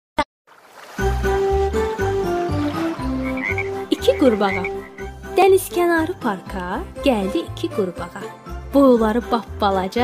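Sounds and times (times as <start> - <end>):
children's tune melody: 1.0 - 10.0
frog croaking: 3.0 - 5.2.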